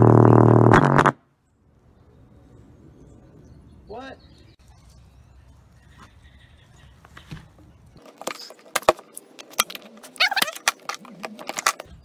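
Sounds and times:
speaker playing buzzing bass drone: 0.0 - 1.2.

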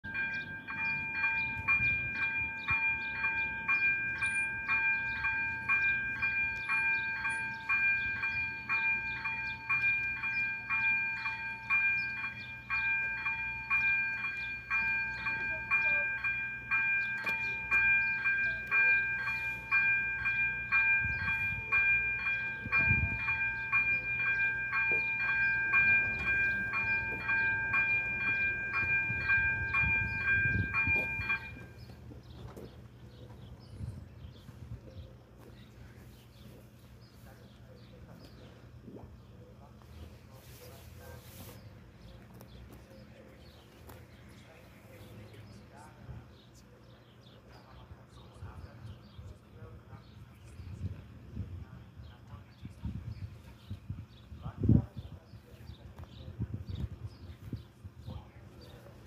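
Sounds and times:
level crossing warning bell: 0.0 - 56.6, 57.2 - 59.0.

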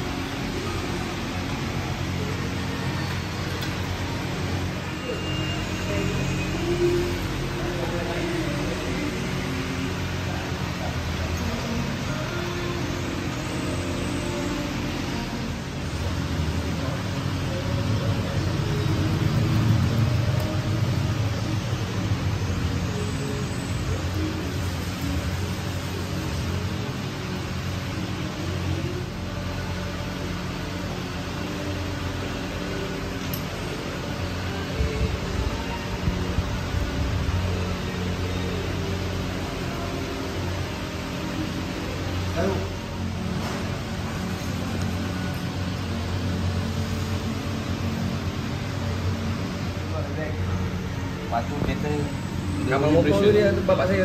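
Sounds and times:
background music with low tones: 0.0 - 54.0
faint workshop noise: 0.0 - 54.0.

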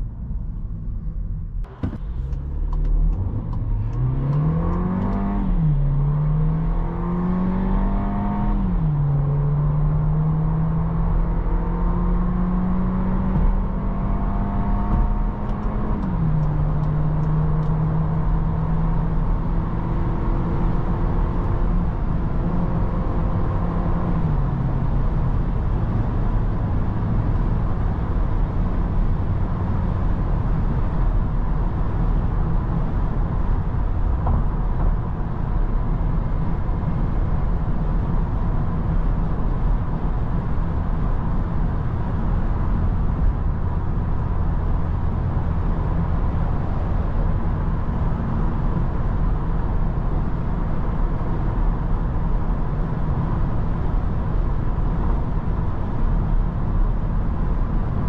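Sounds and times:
car engine accelerating: 0.0 - 58.0
tyre and road noise: 20.8 - 58.0.

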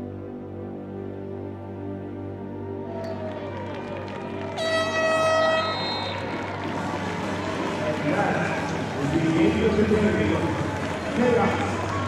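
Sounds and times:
stadium crowd noise: 2.8 - 12.0
air horn blast: 4.5 - 6.5.

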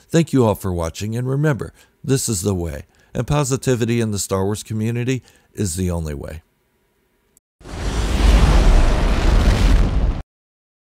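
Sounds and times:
explosion blast with deep rumble: 7.6 - 10.2.

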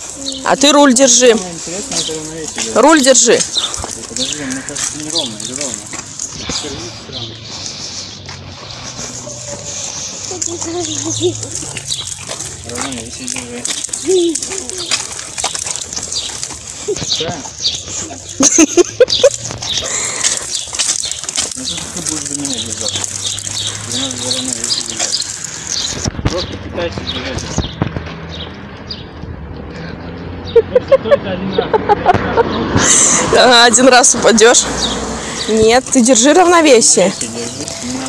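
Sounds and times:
birds chirping: 0.0 - 38.0
indistinct voices talking: 0.0 - 38.0.

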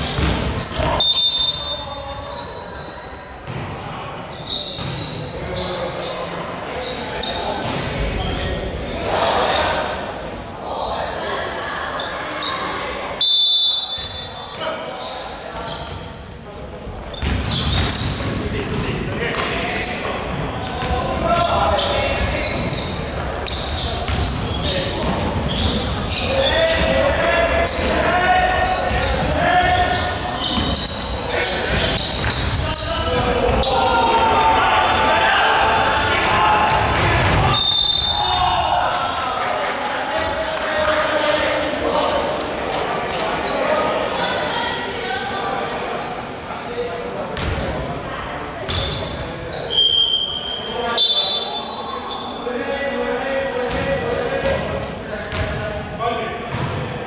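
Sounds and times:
basketball bouncing on wooden court: 0.0 - 1.0, 4.8 - 5.0, 17.1 - 21.5, 22.1 - 27.1, 28.7 - 30.9, 31.6 - 33.7, 47.4 - 47.6, 55.3 - 55.6, 56.5 - 56.9
players and spectators voices: 0.0 - 57.0.

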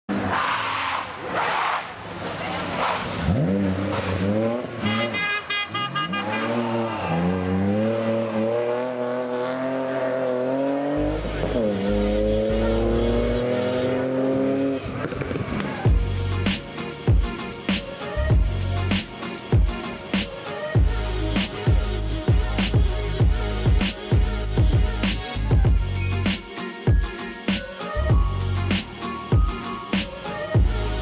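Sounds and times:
rally car engine revving: 0.1 - 15.9.

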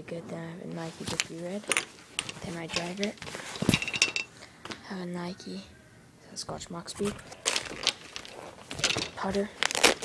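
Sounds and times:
golf clubs rustling and scraping: 0.7 - 4.4, 6.9 - 10.0.

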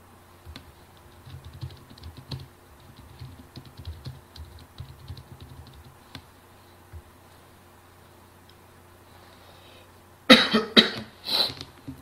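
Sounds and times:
room hum: 0.0 - 12.0
person coughing: 10.3 - 11.5.

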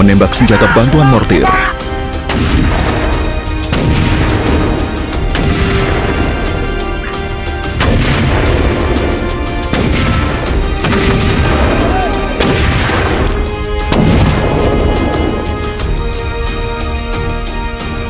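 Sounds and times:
music: 0.0 - 18.0.

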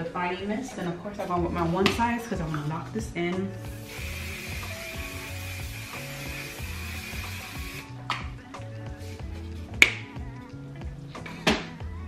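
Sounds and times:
aerosol spray hissing: 3.7 - 7.9.

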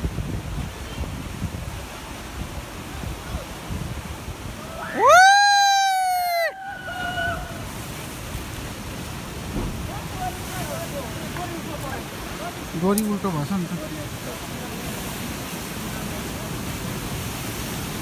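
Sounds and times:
wind on microphone: 0.0 - 5.1
surf breaking on rocks: 1.2 - 18.0
person yelling: 4.6 - 7.5.

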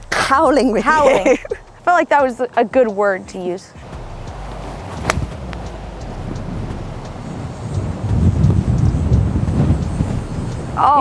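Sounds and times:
wind buffeting microphone: 0.0 - 11.0
golf club striking ball: 3.8 - 7.1.

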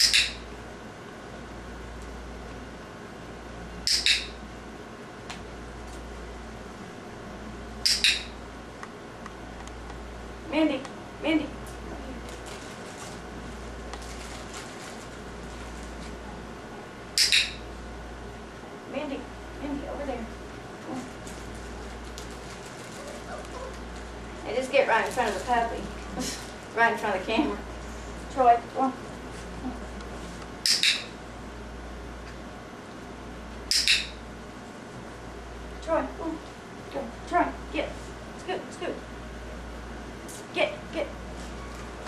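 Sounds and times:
training clicker double click: 0.0 - 0.4, 3.9 - 4.4, 7.8 - 8.4, 17.2 - 17.6, 30.6 - 31.1, 33.7 - 34.2
low steady hum: 0.0 - 42.0.

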